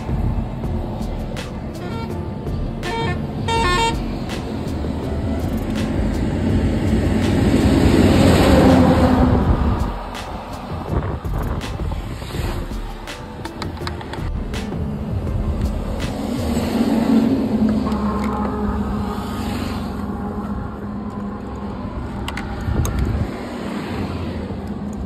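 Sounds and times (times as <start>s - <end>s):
highway traffic: 0.0s - 25.0s
vehicle passing: 0.0s - 25.0s
vehicle horn tooting: 1.8s - 2.2s, 2.9s - 4.0s, 17.8s - 19.3s.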